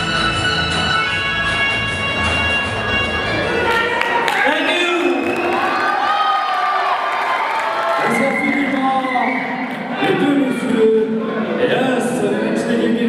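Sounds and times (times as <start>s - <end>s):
live band playing: 0.0s - 4.3s
audience cheering and shouting: 2.7s - 11.7s.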